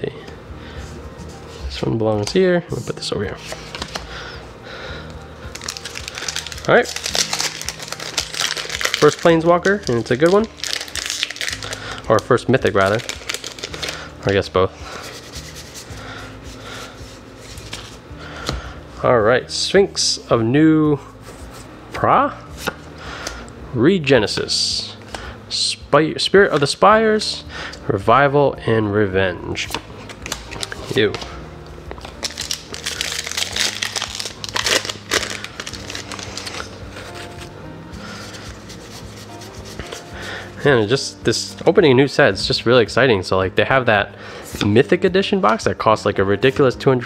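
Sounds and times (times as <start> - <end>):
cards sliding and rubbing: 3.3 - 4.1, 14.9 - 18.0, 33.6 - 40.2.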